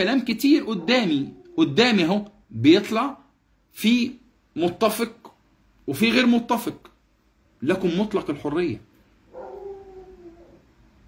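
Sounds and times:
faint animal whine: 9.3s - 10.7s.

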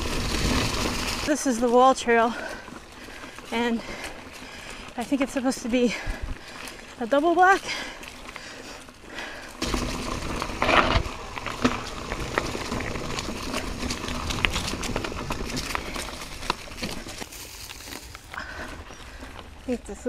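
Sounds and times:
bike clicking and rattling over rocks: 0.0s - 20.0s
bike tyres crunching through leaves: 0.0s - 20.0s.

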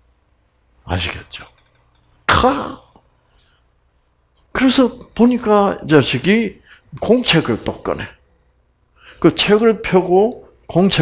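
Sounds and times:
man clearing his throat: 2.3s - 3.0s.

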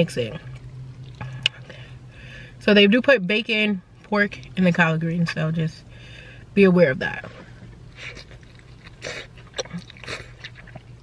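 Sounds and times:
low steady hum: 0.0s - 11.0s
chewing food: 0.5s - 1.7s, 8.0s - 11.0s.

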